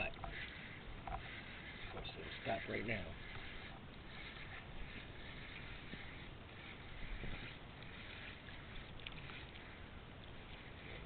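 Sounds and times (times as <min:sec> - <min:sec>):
small choppy waves: 0:00.0 - 0:11.0
wind: 0:00.0 - 0:11.0.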